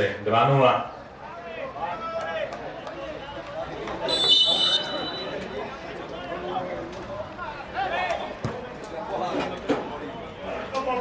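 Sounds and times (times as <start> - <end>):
outdoor crowd noise: 0.0 - 11.0
voices calling and shouting: 0.6 - 11.0.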